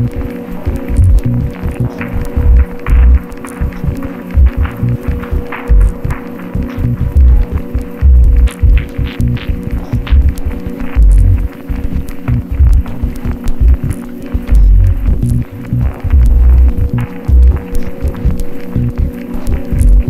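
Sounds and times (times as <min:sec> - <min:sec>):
ambient electronic music: 0:00.0 - 0:20.0
clicks and crackles: 0:00.0 - 0:20.0
deep bass pulses: 0:00.0 - 0:20.0
steady hum: 0:00.0 - 0:20.0.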